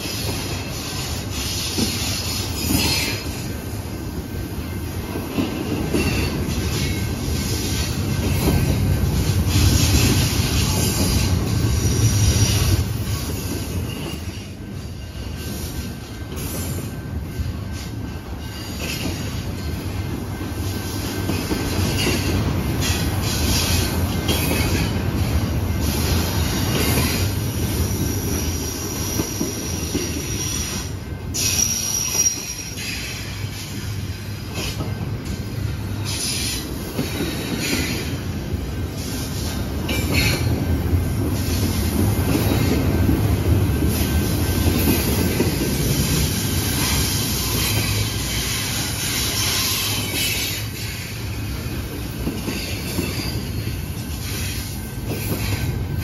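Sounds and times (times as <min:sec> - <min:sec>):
train wheels rumbling on rails: 0:00.0 - 0:56.0
high wheel squeal: 0:25.8 - 0:33.7, 0:46.0 - 0:51.2.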